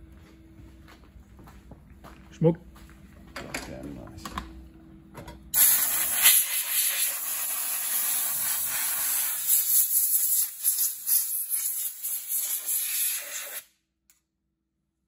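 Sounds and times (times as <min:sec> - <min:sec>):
compressed air gun hissing: 0:05.6 - 0:13.6.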